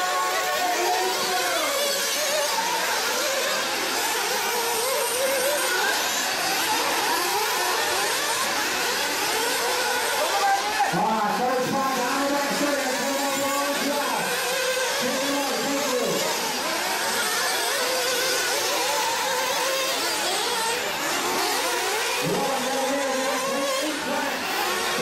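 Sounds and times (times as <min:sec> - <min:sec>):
small engines racing: 0:00.0 - 0:25.0.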